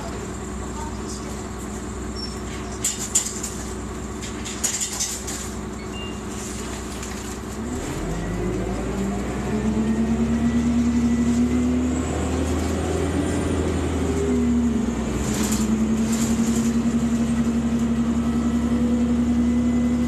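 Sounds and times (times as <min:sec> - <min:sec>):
bus engine accelerating: 0:00.0 - 0:20.0.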